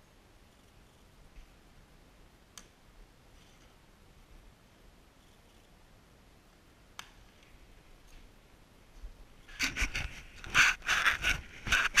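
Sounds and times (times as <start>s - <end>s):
scrapes and knocks: 9.5s - 12.0s.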